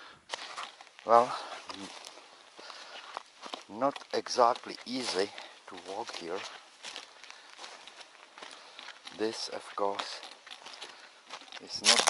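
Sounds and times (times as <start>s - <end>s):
footsteps on loose rock: 0.3s - 12.0s.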